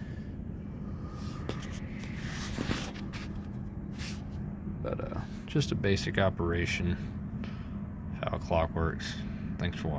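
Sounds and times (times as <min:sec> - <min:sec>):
low electrical hum: 0:00.0 - 0:09.9
camera handling rustle: 0:01.5 - 0:04.2.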